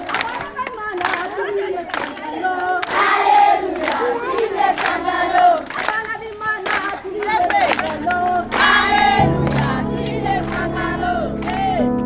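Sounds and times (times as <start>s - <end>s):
children shouting and cheering: 0.0s - 11.9s.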